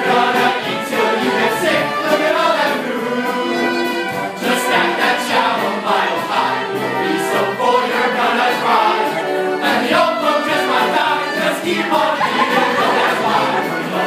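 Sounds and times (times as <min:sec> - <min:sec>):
instrumental backing: 0:00.0 - 0:14.0
men singing together: 0:00.0 - 0:14.0.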